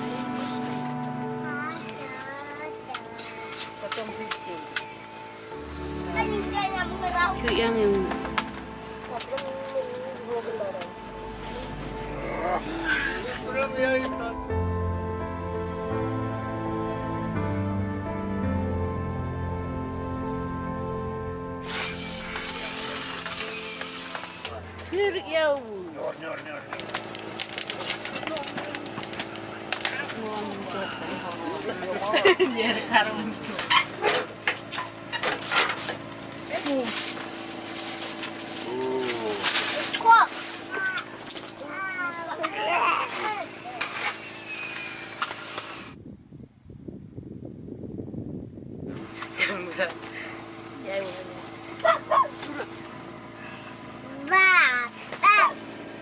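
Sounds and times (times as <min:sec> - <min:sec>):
music: 0:00.0 - 0:26.2
small child babbling: 0:01.4 - 0:03.2, 0:40.0 - 0:43.5
metal wood stove clatter: 0:31.5 - 0:38.5.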